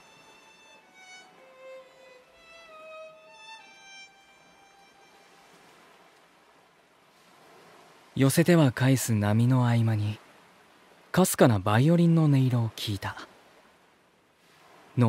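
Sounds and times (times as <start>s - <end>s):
faint solo violin melody: 0.0s - 6.2s
waves washing: 0.0s - 15.0s.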